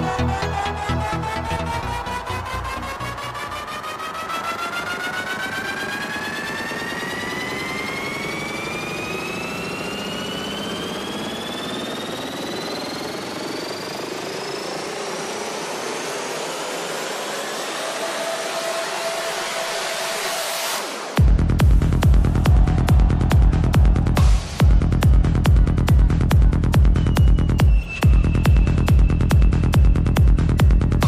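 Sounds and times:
synthesized riser sweeping upward: 0:00.0 - 0:25.1.

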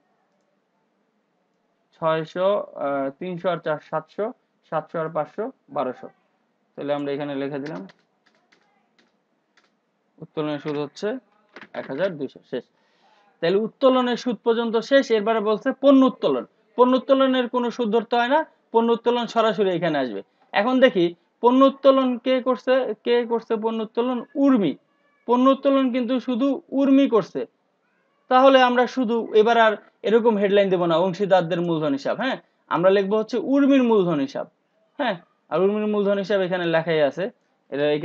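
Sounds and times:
person speaking: 0:01.9 - 0:09.1, 0:10.2 - 0:27.5, 0:28.3 - 0:38.0
computer keyboard typing: 0:07.6 - 0:09.7.

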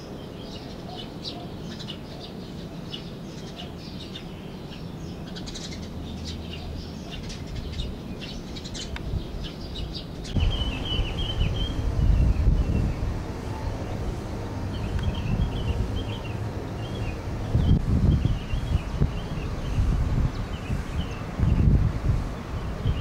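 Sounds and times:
small birds chirping: 0:00.0 - 0:23.0
wind buffeting microphone: 0:05.0 - 0:23.0.

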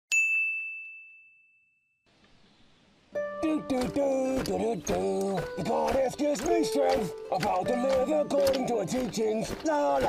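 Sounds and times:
bell-like chime ding: 0:00.1 - 0:02.0.

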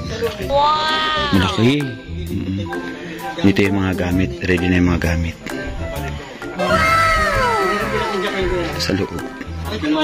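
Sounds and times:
background music with steady beat: 0:00.0 - 0:10.0
long animal-like cry: 0:06.6 - 0:08.8.

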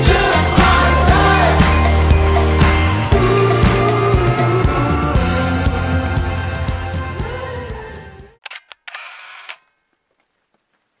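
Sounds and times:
background music: 0:00.0 - 0:08.4
camera shutter sound effect: 0:08.4 - 0:09.7.

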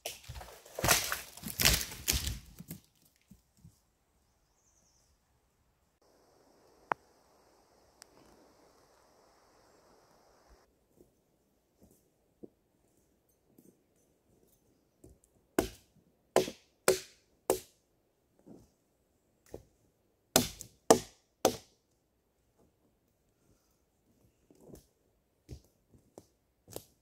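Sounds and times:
blade chopping into a log: 0:16.4 - 0:17.7, 0:20.4 - 0:21.7.

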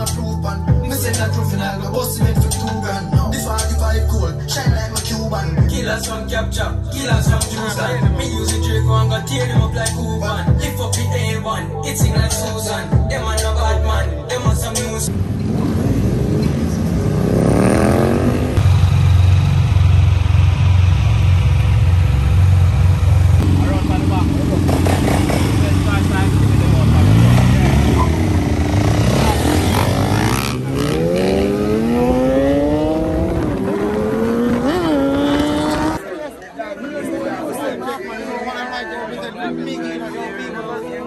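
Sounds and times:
motorcycle engines accelerating: 0:15.0 - 0:36.0.

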